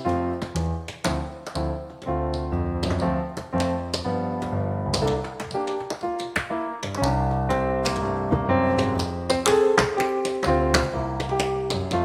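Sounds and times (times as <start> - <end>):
bass notes: 7.1 - 9.4.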